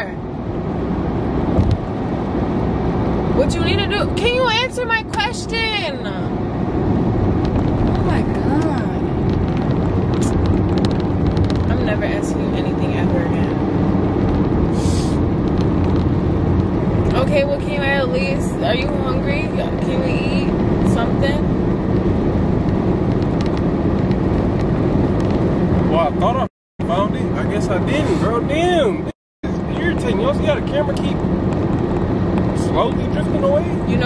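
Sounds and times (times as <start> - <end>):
car road and engine rumble: 0.0 - 34.0.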